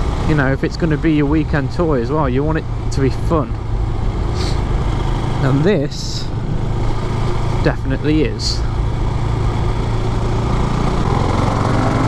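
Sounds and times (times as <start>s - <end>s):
motorcycle engine at low revs: 0.0s - 12.0s.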